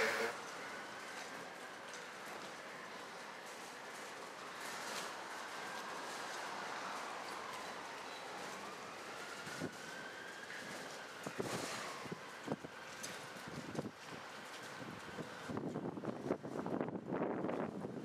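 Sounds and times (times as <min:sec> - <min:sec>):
outdoor background noise: 0:00.0 - 0:18.0.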